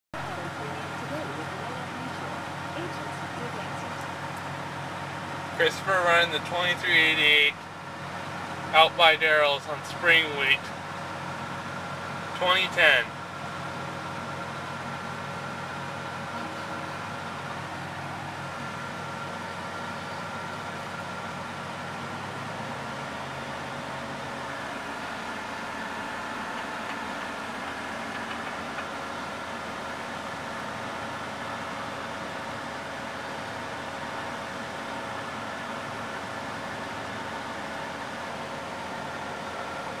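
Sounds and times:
combine harvester drone: 0:00.2 - 0:40.0.

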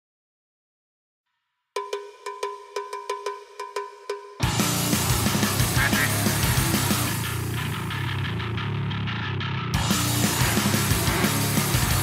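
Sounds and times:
metal percussion struck fast: 0:01.8 - 0:08.1, 0:09.8 - 0:12.0.

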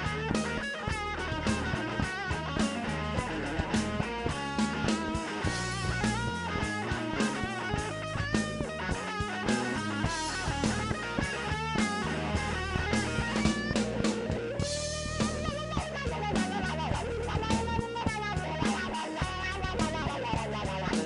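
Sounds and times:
bass guitar: 0:00.0 - 0:21.0
drum kit: 0:00.0 - 0:21.0
electric guitar solo: 0:00.0 - 0:21.0.

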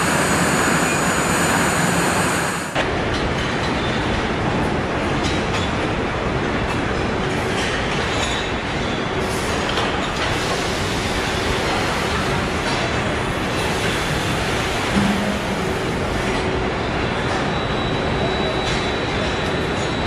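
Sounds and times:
machinery rumble and hiss: 0:00.0 - 0:03.2, 0:06.0 - 0:20.0.

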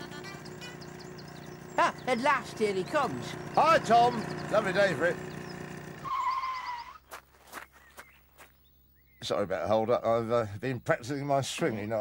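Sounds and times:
brakes squealing: 0:00.0 - 0:08.0.

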